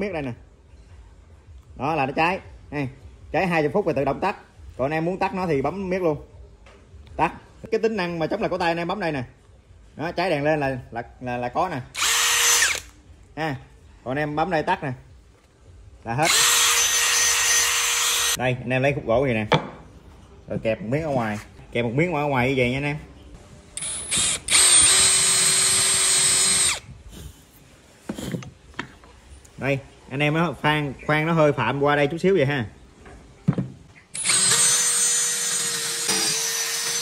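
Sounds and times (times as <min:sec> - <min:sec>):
cordless drill whining: 0:12.0 - 0:12.9, 0:16.2 - 0:18.4, 0:23.8 - 0:26.8, 0:34.2 - 0:37.0.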